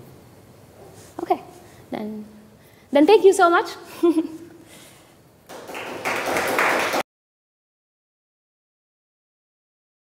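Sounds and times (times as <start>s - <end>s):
audience applauding: 5.5s - 7.0s.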